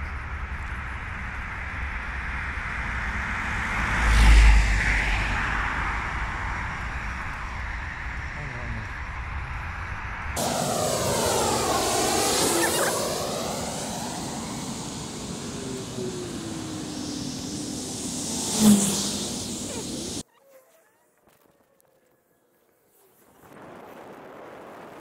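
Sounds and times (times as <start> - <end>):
vehicle rushing past: 2.2 - 8.8, 9.6 - 20.2.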